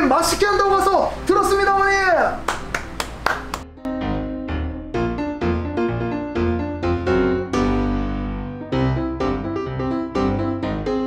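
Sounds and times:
piano background music: 0.0s - 11.0s
hand claps: 2.4s - 3.7s.

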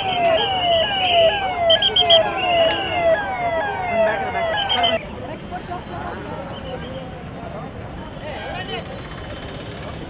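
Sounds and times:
vehicle siren sweeping: 0.0s - 5.0s.

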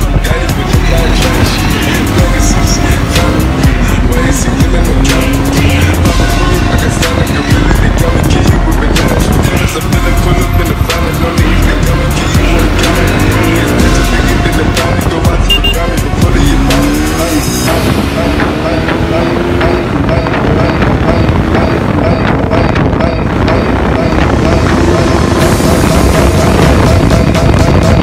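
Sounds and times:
motorcycle engine revving: 0.0s - 28.0s
music: 0.0s - 28.0s.

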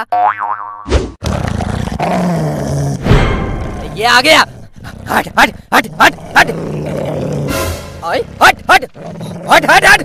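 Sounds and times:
cartoon boing: 0.0s - 1.0s
sudden hit: 3.0s - 4.0s
dog growling: 4.4s - 7.6s, 8.2s - 9.8s.

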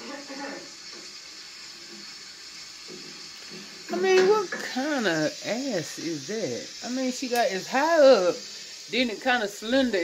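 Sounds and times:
tap running into sink: 1.8s - 5.0s.

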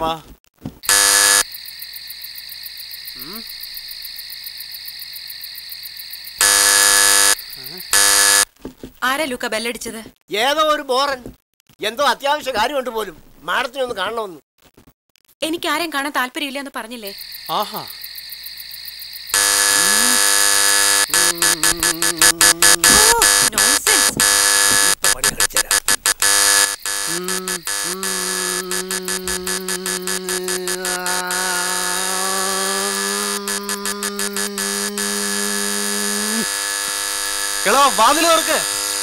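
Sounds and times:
harsh buzzing clashing tones: 0.8s - 1.5s, 6.4s - 8.5s, 19.3s - 39.0s.

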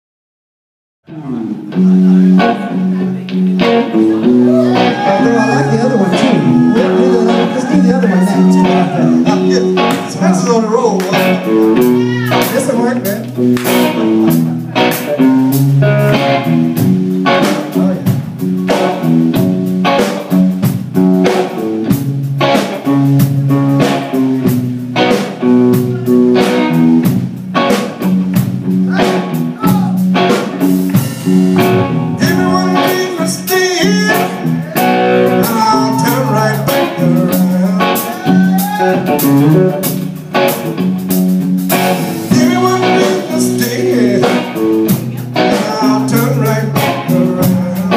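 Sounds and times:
bending electric guitar lines: 1.1s - 47.9s
live blues band playing: 1.1s - 47.9s.

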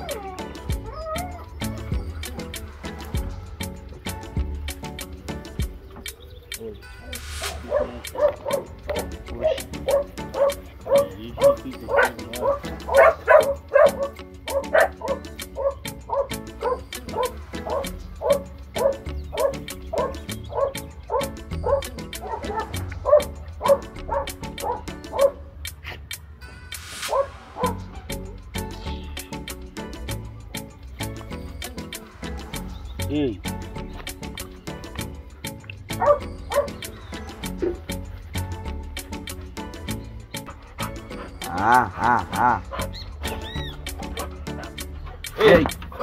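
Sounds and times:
puppy yelping: 0.0s - 3.6s, 7.4s - 26.0s, 27.0s - 28.7s, 36.0s - 38.0s, 40.4s - 46.0s.

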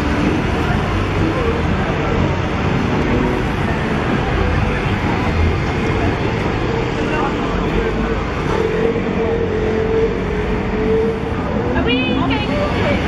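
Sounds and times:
indistinct voices: 0.0s - 13.0s
street traffic: 0.0s - 13.0s.

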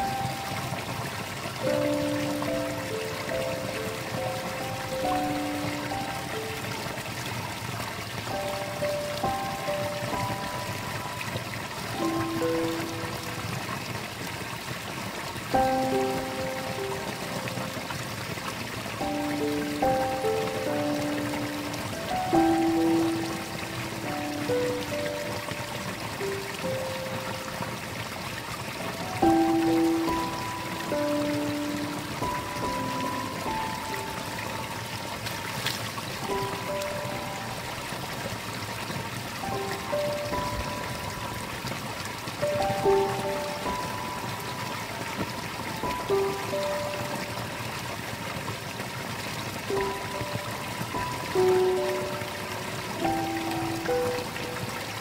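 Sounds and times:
slow gentle melody: 0.0s - 55.0s
water splashing into a ditch: 0.0s - 55.0s.

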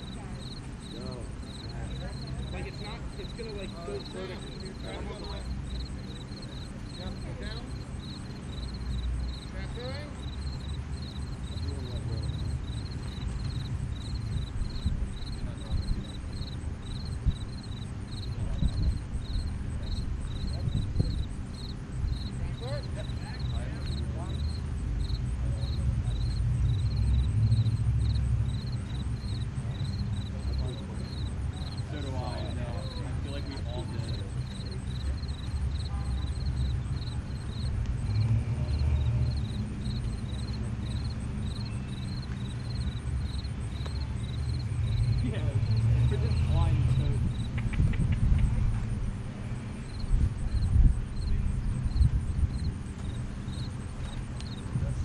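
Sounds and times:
faint distant voices: 0.0s - 55.0s
insects chirping: 0.0s - 55.0s
wind rumble on microphone: 11.7s - 30.4s, 33.4s - 55.0s
wind buffeting microphone: 12.8s - 23.4s, 46.6s - 55.0s.

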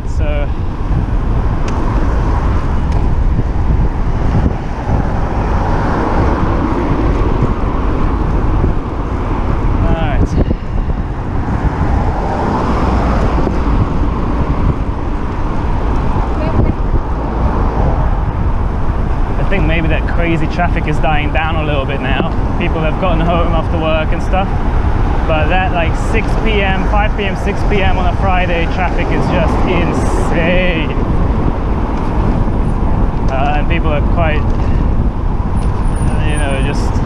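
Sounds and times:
road traffic: 0.0s - 37.0s
wind rushing over microphone: 0.0s - 37.0s.

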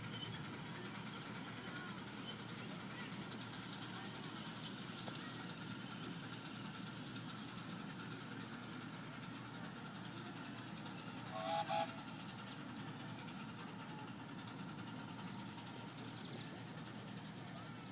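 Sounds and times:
steam locomotive whistle blasts: 11.3s - 12.0s.

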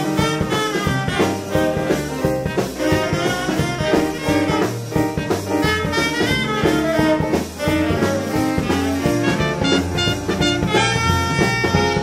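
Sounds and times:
drum kit: 0.0s - 12.0s
saxophone: 0.0s - 12.0s
trumpet: 0.0s - 12.0s.

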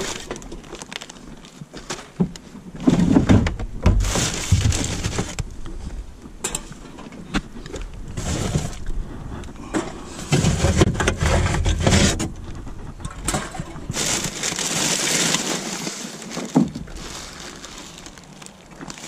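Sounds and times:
bags rustling and crinkling: 0.0s - 5.9s, 7.7s - 12.2s, 13.4s - 19.0s
low rumbling: 7.5s - 16.1s, 16.7s - 19.0s.

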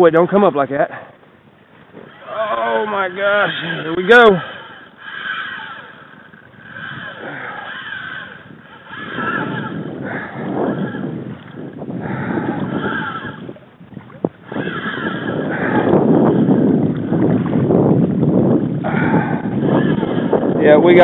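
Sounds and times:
water splashing against kayak: 1.6s - 20.6s
wavering high whine: 2.0s - 11.8s
wind on microphone: 2.0s - 21.0s.

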